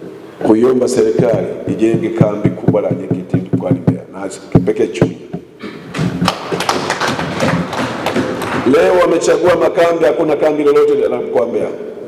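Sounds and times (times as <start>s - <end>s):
audience clapping: 5.9s - 9.2s.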